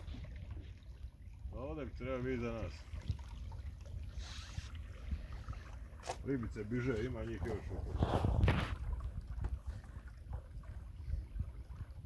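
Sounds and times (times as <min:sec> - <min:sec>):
water washing along boat hull: 0:00.0 - 0:12.0
brief hiss of water: 0:04.1 - 0:05.4.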